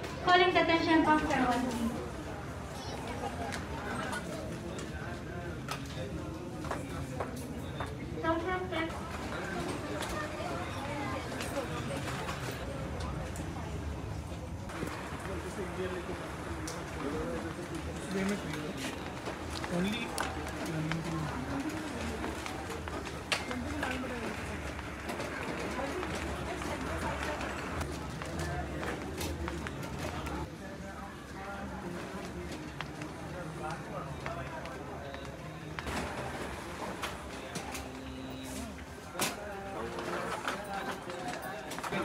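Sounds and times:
shoppers chattering: 0.0s - 42.0s.

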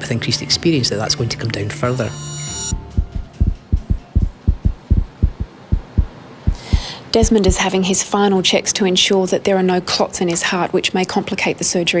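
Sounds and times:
rapid heartbeat thumps: 2.7s - 7.6s.

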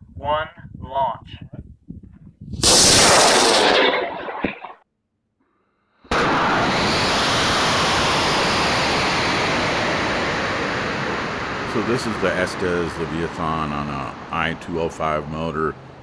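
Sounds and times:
wind noise on camera: 0.0s - 2.8s
rocket motor roaring: 2.6s - 4.7s, 6.1s - 14.4s.

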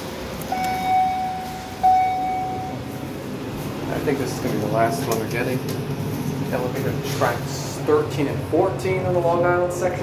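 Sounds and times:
steady background hum: 0.0s - 10.0s
elevator chime: 0.5s - 3.2s.

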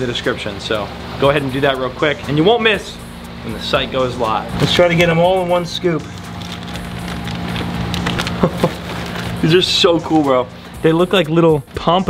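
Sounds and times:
plastic bag crinkling: 5.9s - 9.6s.

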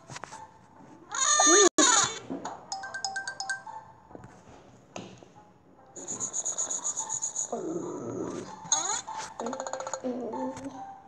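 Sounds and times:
cartoon music: 1.3s - 2.0s
chiming tones: 2.7s - 3.7s.

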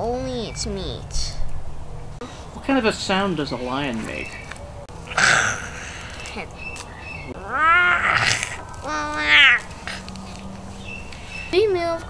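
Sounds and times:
boy imitating lion roar: 5.1s - 6.5s, 7.4s - 10.1s.

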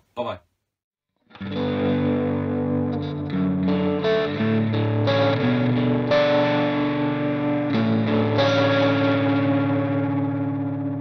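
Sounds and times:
distorted electric guitar chord: 1.4s - 11.0s.

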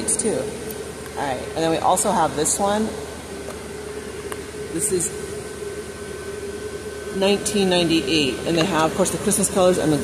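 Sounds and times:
ventilation hiss and hum: 0.0s - 10.0s.

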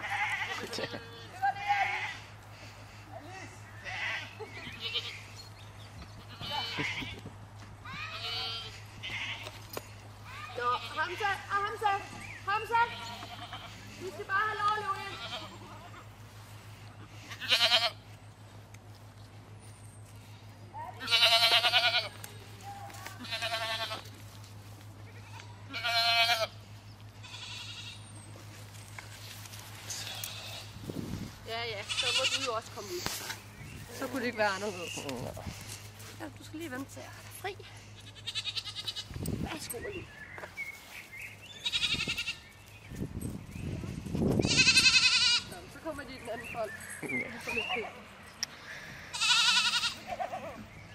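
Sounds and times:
goat bleating: 0.0s - 2.4s, 3.3s - 5.4s, 6.1s - 7.2s, 7.9s - 18.2s, 20.9s - 28.1s, 29.8s - 30.9s, 31.6s - 33.0s, 37.2s - 39.3s, 41.5s - 42.5s, 44.4s - 45.8s, 49.1s - 50.6s.

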